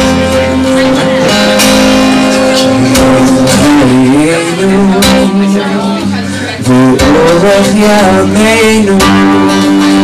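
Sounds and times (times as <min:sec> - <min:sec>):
acoustic guitar: 0:00.0 - 0:10.0.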